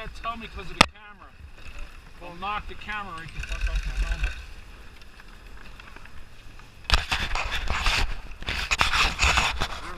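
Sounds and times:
glove rubbing against camera: 6.9s - 9.9s.

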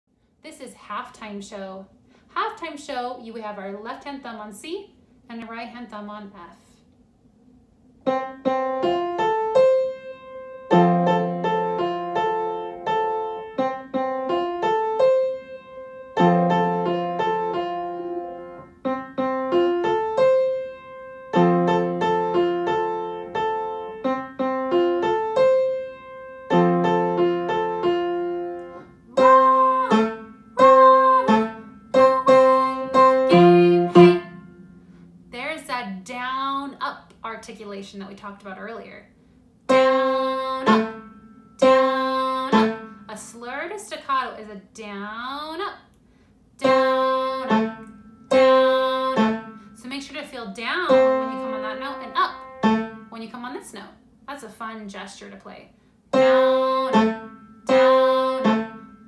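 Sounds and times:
piano piece: 8.0s - 35.6s, 39.7s - 43.3s, 46.6s - 53.4s, 56.1s - 59.0s.

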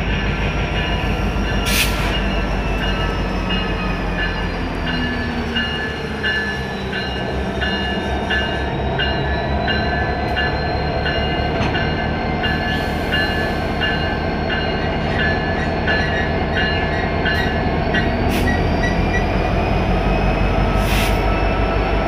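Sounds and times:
locomotive bell ringing: 0.0s - 19.4s
diesel locomotive engine droning: 0.0s - 22.0s.

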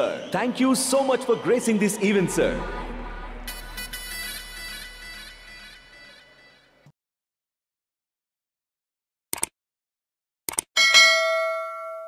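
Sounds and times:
notification bell ding: 10.8s - 12.0s.

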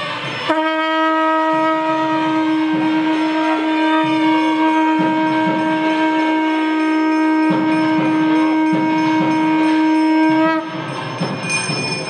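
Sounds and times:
crowd hubbub: 0.0s - 12.0s
conch shell blast: 0.4s - 10.9s.

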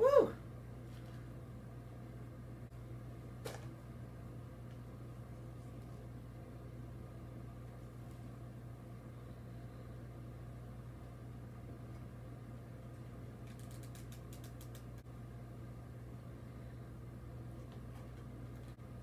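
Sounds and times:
room tone hum: 0.0s - 19.0s.

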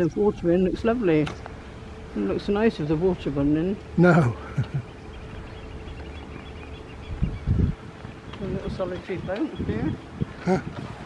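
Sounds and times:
faint continuous hum: 0.0s - 11.0s
low steady rumble: 0.0s - 11.0s.

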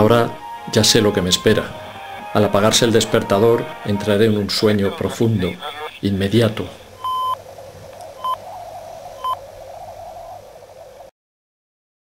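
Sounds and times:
faint background noise: 0.0s - 11.1s
alarm clock beeping: 7.0s - 7.4s, 9.2s - 9.4s.

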